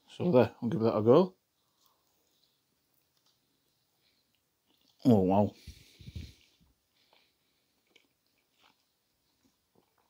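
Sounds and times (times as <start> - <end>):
person chewing food: 1.5 - 10.0.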